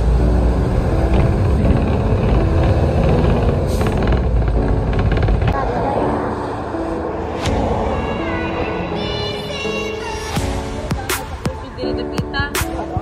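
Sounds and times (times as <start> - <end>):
background music: 0.0 - 13.0
vehicle road rumble: 0.0 - 13.0.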